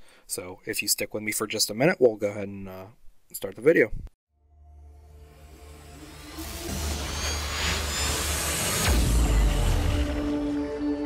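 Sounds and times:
low drone and sustained tones: 0:04.5 - 0:11.0
rising hissing swell: 0:05.2 - 0:11.0
deep low hit: 0:06.4 - 0:10.6.

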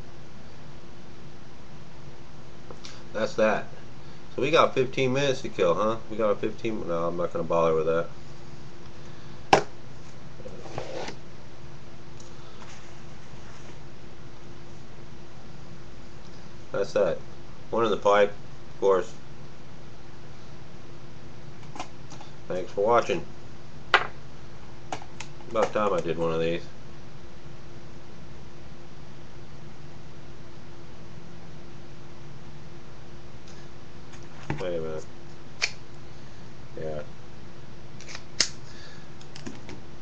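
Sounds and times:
room noise hiss and hum: 0:00.0 - 0:40.0
knife set down on wooden table: 0:23.9 - 0:24.1.

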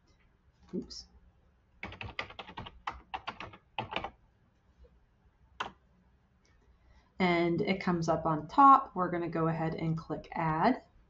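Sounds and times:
computer keyboard typing: 0:01.8 - 0:04.2, 0:05.6 - 0:05.8.

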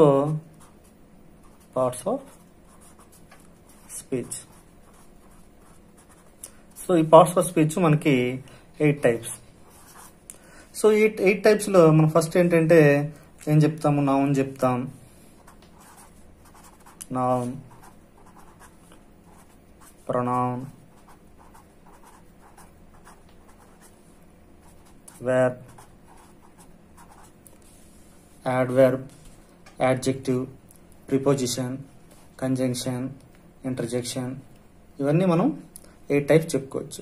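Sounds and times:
person speaking: 0:00.0 - 0:00.8, 0:01.4 - 0:24.0, 0:24.6 - 0:37.0
marker pen writing on paper: 0:01.4 - 0:06.4, 0:09.6 - 0:10.2, 0:15.5 - 0:20.1, 0:20.9 - 0:24.0, 0:24.6 - 0:27.4.

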